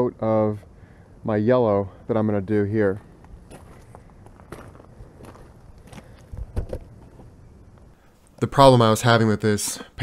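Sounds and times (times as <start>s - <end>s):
footsteps on gravel: 3.2s - 7.3s.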